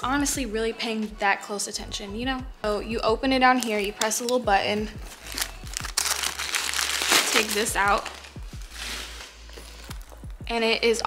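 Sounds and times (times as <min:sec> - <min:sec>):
paper stuffing crinkling: 0:05.0 - 0:10.2.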